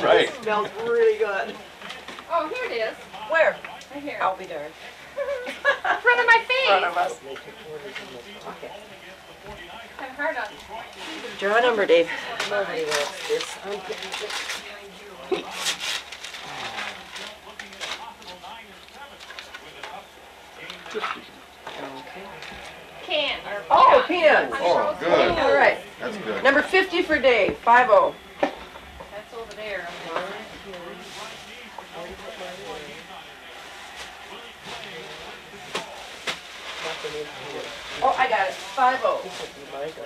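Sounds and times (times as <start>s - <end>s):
background chatter: 0.0s - 40.0s
quiet indistinct conversation: 0.0s - 40.0s.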